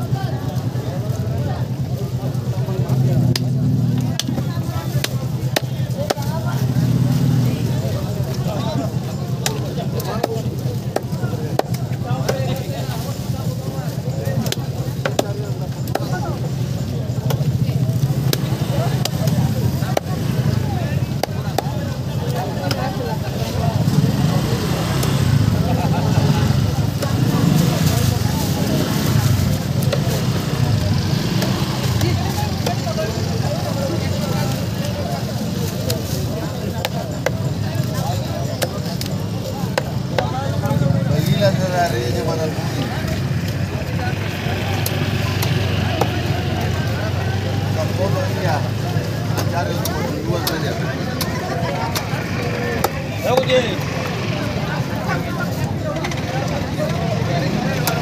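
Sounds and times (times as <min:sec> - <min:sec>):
crowd chatter: 0:00.0 - 0:58.0.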